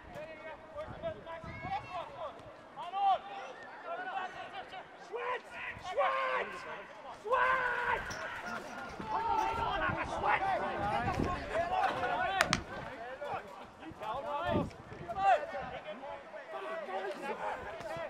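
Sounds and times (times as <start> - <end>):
footballers shouting: 2.8 - 18.0.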